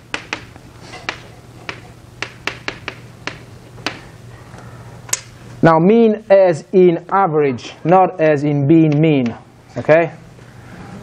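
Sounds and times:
chalk tapping on a chalkboard: 0.0 - 4.1
low electrical hum: 0.0 - 11.0.

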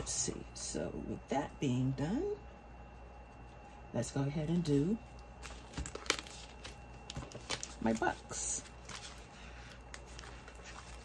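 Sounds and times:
wallet rustling: 5.3 - 11.0.

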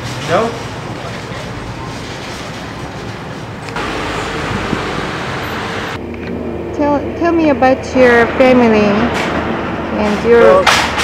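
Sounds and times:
passing cars: 0.0 - 11.0.

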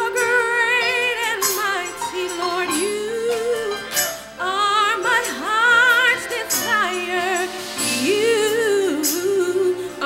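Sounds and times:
woman singing gospel: 0.0 - 10.0.

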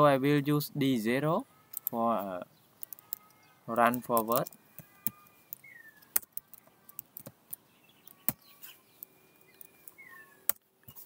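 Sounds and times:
computer keyboard keystrokes: 2.8 - 7.4.

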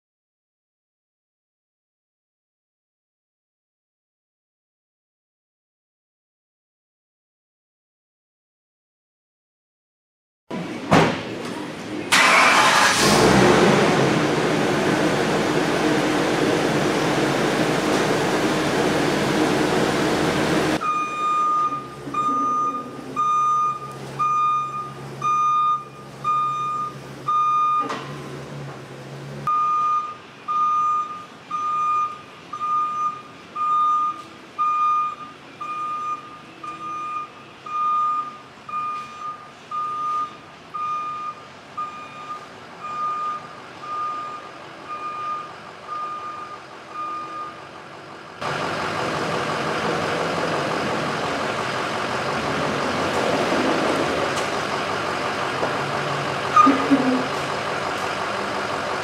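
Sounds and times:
reversing alarm beeping: 20.8 - 28.3, 29.5 - 47.7
low engine idle: 42.8 - 53.1, 53.8 - 59.0.

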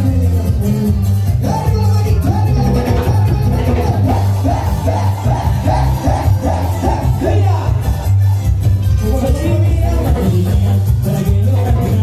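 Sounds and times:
live band playing cumbia: 0.0 - 12.0.

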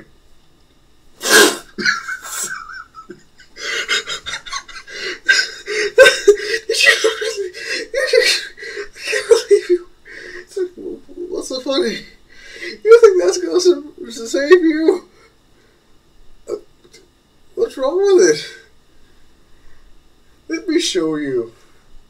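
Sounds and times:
person laughing hard: 1.2 - 9.9.

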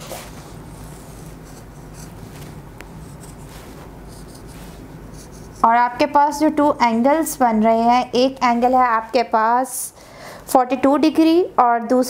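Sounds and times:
marker drawing on whiteboard: 0.7 - 9.3.

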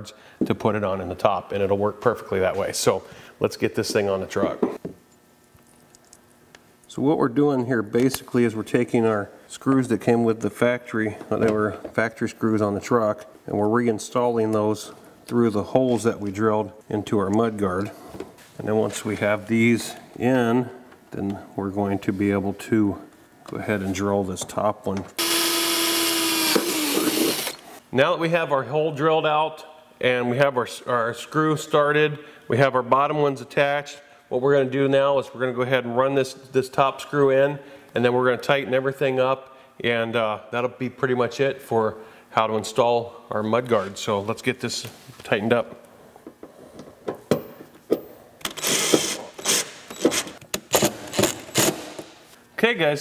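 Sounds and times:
cordless drill drilling plastic: 25.2 - 27.6, 48.6 - 50.3.

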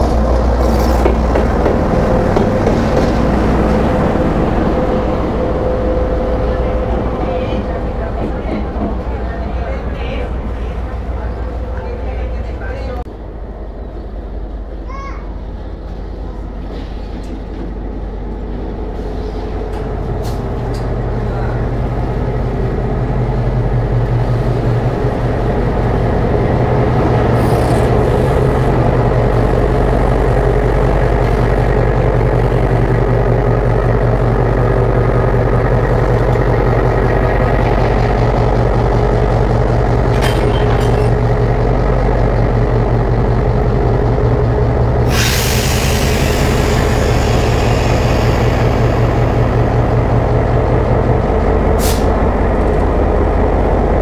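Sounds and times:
diesel locomotive engine running: 0.0 - 54.0
brake air hiss: 45.0 - 49.3, 51.8 - 52.2.

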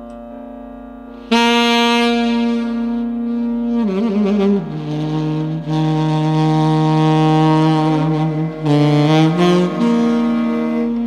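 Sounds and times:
saxophone holding low note: 0.0 - 11.0.

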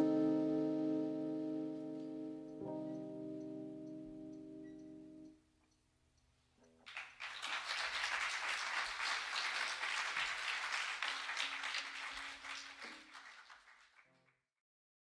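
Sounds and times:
audience applauding: 6.8 - 14.4.

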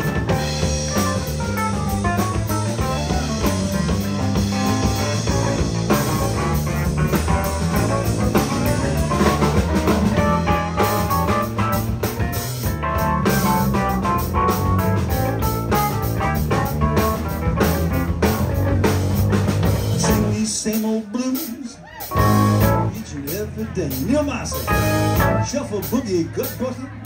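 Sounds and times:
blues band playing: 0.0 - 27.0.

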